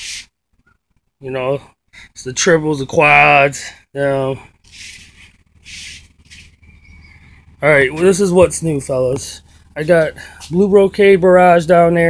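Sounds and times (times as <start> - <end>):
person breathing softly: 9.4 - 10.5.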